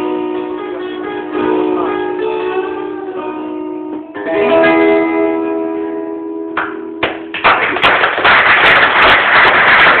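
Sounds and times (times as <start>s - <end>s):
acoustic guitar chord ringing: 0.0s - 7.3s
audience applause: 7.3s - 10.0s.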